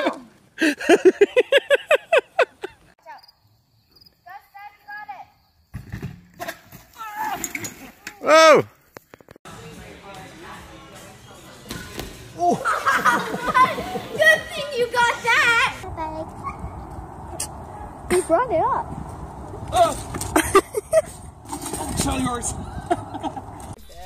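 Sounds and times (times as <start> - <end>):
person laughing in bursts: 0.6 - 2.9, 20.3 - 21.2.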